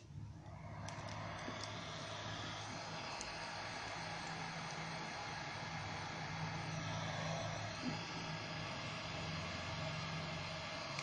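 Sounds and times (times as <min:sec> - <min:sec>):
heat gun blowing air: 0:00.4 - 0:11.0.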